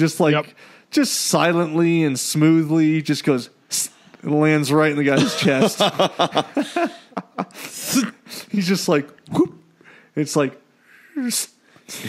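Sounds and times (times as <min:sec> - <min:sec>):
men laughing: 0:05.2 - 0:07.8.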